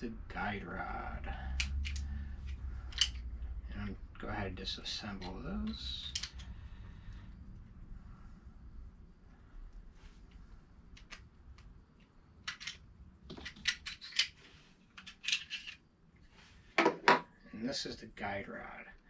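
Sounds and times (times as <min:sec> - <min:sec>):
pistol parts clicking and scraping: 0:01.4 - 0:03.3, 0:05.1 - 0:06.6, 0:10.9 - 0:15.9.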